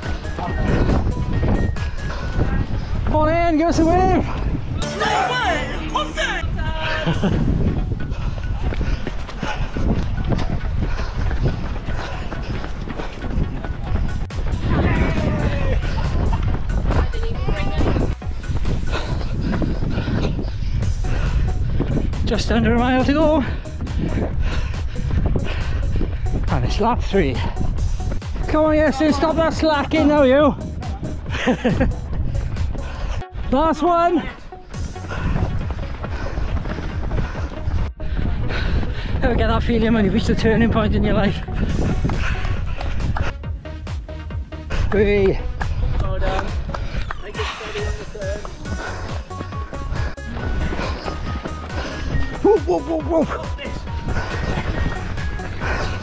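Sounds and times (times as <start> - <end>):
wind rumbling on microphone: 0.0 - 4.8, 6.4 - 33.6, 34.4 - 43.6, 44.4 - 56.0
running footsteps on pavement: 0.0 - 5.6, 6.4 - 56.0.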